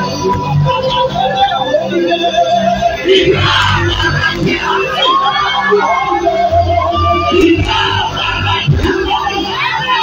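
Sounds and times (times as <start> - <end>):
gospel music over loudspeakers: 0.0 - 10.0
deep bass: 2.8 - 10.0.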